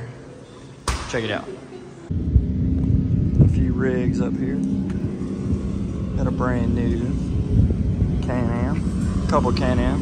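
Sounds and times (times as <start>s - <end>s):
wind on microphone: 2.1s - 10.0s.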